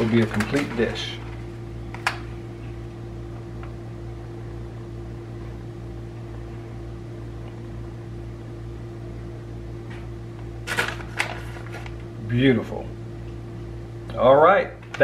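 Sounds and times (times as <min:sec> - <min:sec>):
steady mechanical hum: 0:00.0 - 0:15.0.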